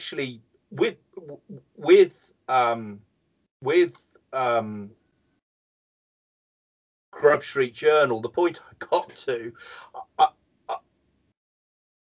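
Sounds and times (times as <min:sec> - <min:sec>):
man speaking hesitantly: 0:00.0 - 0:03.0, 0:03.6 - 0:04.9, 0:07.2 - 0:10.3.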